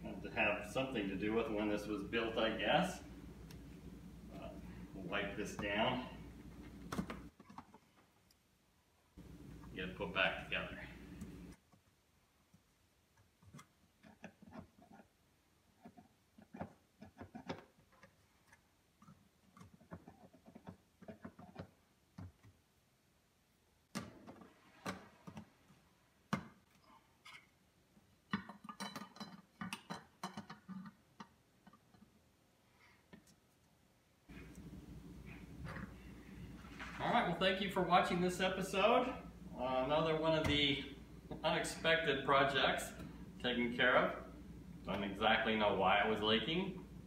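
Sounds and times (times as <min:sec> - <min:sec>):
steady low hum: 0:00.0 - 0:07.3, 0:09.1 - 0:11.6, 0:34.3 - 0:47.0.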